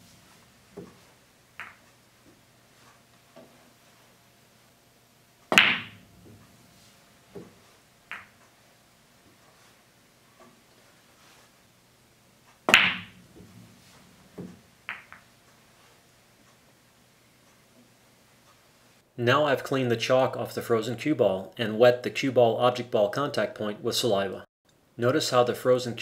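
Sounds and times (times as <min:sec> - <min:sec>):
pool balls clacking: 0:00.0 - 0:03.7, 0:05.5 - 0:06.5, 0:07.3 - 0:08.5, 0:12.6 - 0:15.4.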